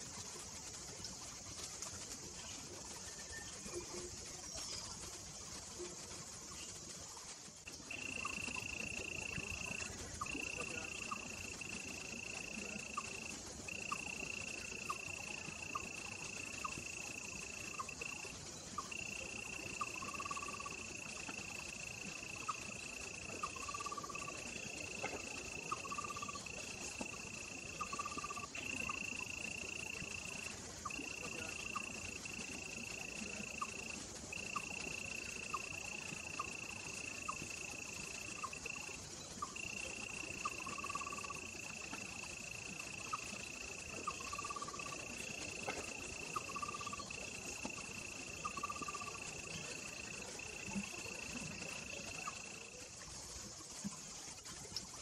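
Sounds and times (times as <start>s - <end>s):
faint ticks: 0.0s - 55.0s
high-pitched insect drone: 0.0s - 55.0s
short low insect calls: 0.0s - 55.0s.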